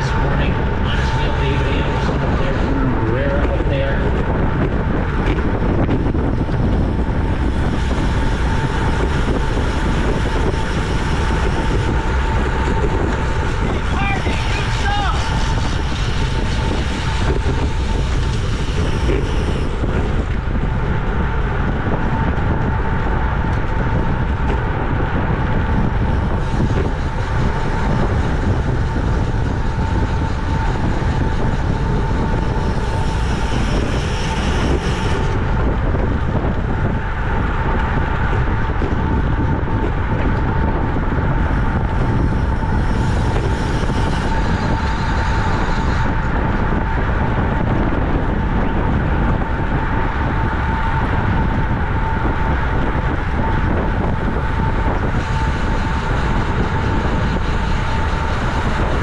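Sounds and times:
tyre and road noise: 0.0s - 59.0s
wind rushing over microphone: 0.0s - 59.0s.

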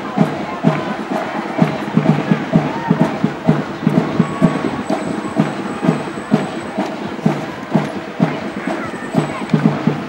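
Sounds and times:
drums playing marching beat: 0.0s - 10.0s.

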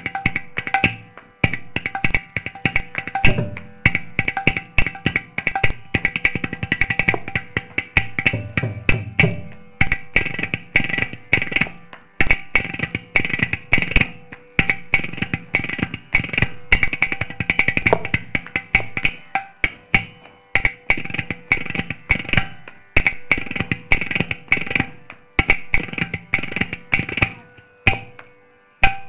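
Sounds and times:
ghatam percussion: 0.0s - 29.0s
mridangam drumming: 0.0s - 29.0s.

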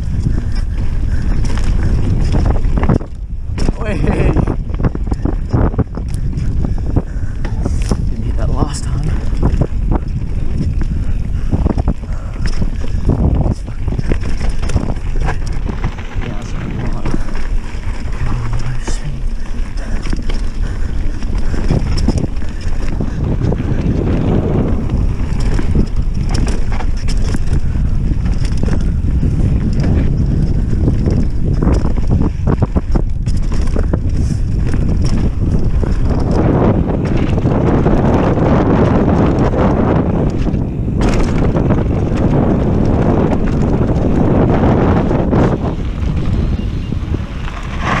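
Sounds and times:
bike knocks and rattles: 0.0s - 48.0s
tyres rumbling on dirt: 0.0s - 48.0s
wind buffeting microphone: 0.0s - 48.0s.

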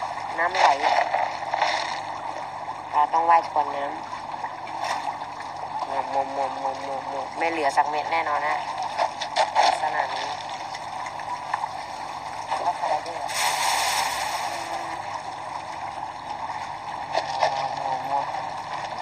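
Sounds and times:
river water flowing: 0.0s - 19.0s.

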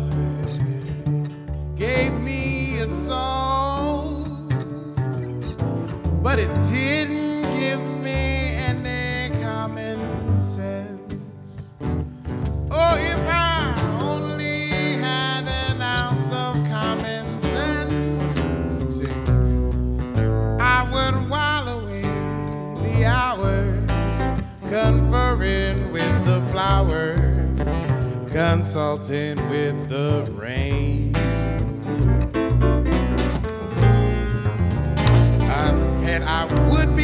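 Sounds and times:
man singing: 0.0s - 5.4s, 6.2s - 11.8s, 12.7s - 19.6s, 20.6s - 32.1s, 35.4s - 37.0s
acoustic guitar: 0.0s - 37.0s
grand piano: 0.0s - 37.0s
upright bass: 0.0s - 37.0s.

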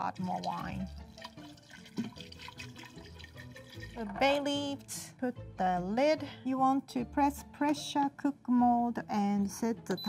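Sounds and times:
wine pouring into pot: 0.0s - 4.7s
quiet background music: 0.0s - 10.0s.

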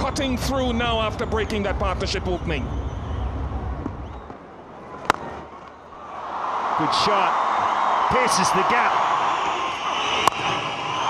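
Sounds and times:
stadium crowd cheering: 0.0s - 11.0s
cricket bat striking ball: 5.0s - 5.4s.

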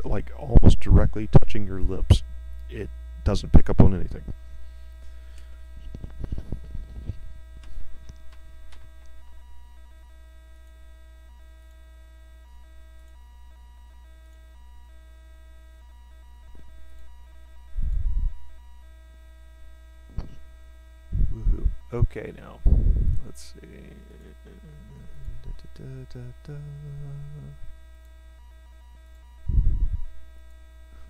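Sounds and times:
electrical mains hum: 0.0s - 31.0s
thin steady tones: 0.0s - 31.0s
short low thump: 20.1s - 20.4s.

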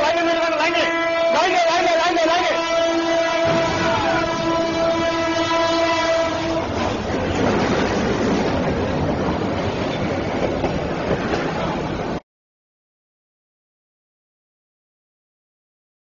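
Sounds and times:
train rumbling over tracks: 0.0s - 12.2s
locomotive horn blowing: 0.4s - 7.1s.

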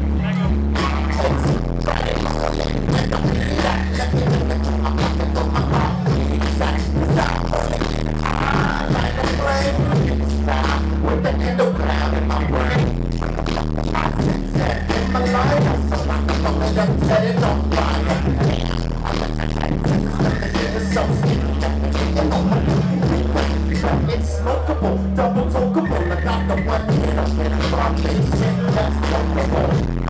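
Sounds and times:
bass-heavy hip-hop beat: 0.0s - 30.0s
rapper on microphone: 0.0s - 30.0s.

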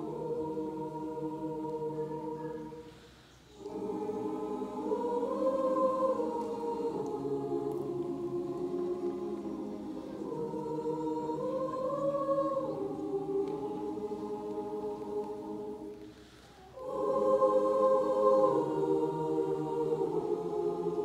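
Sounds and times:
choir singing held chords: 0.0s - 21.0s.

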